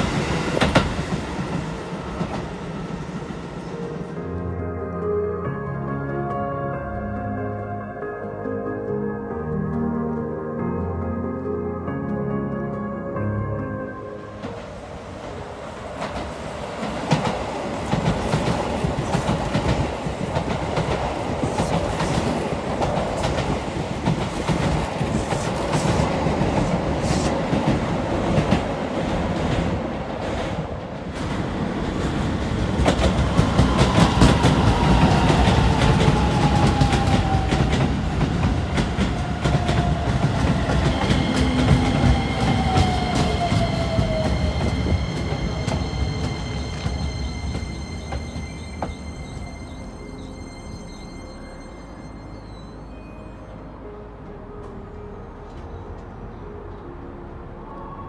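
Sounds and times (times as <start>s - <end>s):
train rail rumble with wheel clatter: 0.0s - 4.6s, 14.2s - 51.0s.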